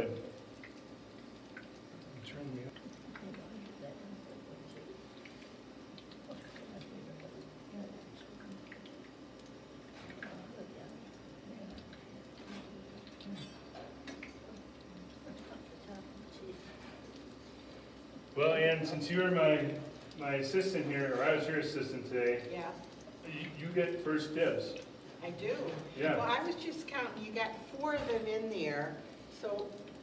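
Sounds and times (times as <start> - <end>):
fritters sizzling in oil: 19.4 - 30.0.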